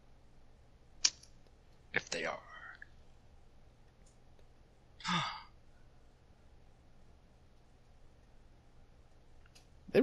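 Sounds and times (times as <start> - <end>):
faint low hum: 0.0 - 10.0
person sighing: 5.0 - 5.6.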